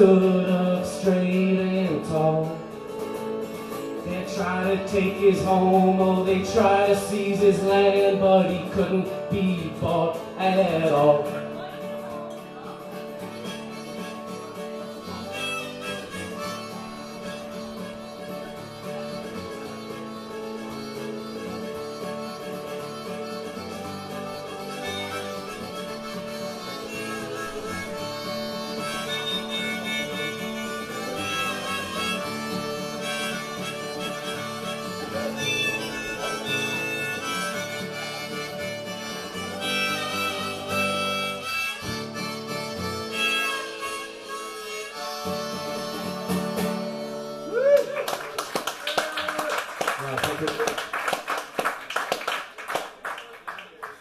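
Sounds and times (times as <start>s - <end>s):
strummed acoustic guitar: 0.0s - 47.6s
harmonica playing: 0.0s - 48.4s.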